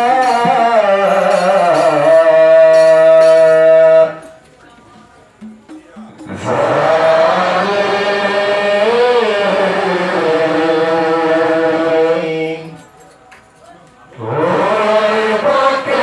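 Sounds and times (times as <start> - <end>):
man chanting: 0.0 - 4.4, 5.8 - 12.8.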